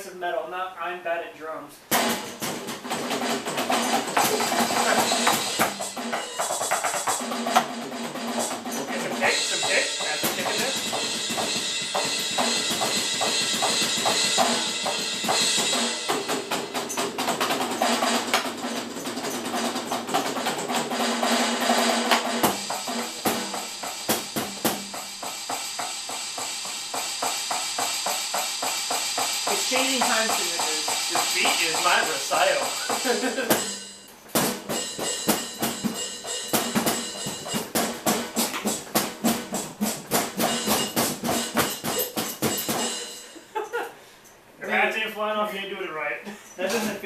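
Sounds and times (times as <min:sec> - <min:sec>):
electronic drum kit: 0:01.8 - 0:43.8.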